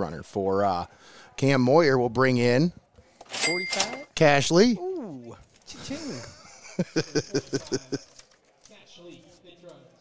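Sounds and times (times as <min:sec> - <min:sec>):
man laughing: 0:05.8 - 0:08.1.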